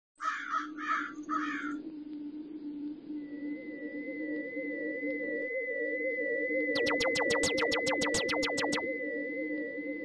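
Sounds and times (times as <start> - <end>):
crow cawing: 0.2 - 1.8.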